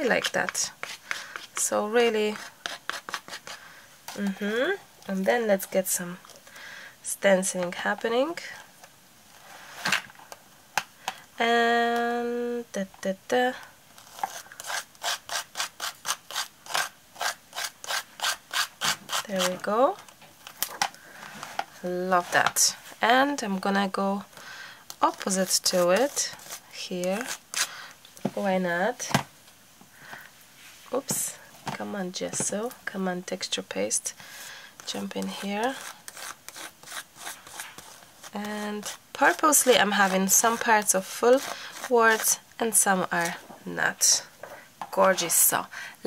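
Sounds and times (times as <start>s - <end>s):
palette knife scraping paste: 0.0s - 4.4s, 14.0s - 19.7s, 25.0s - 27.7s, 34.8s - 43.4s.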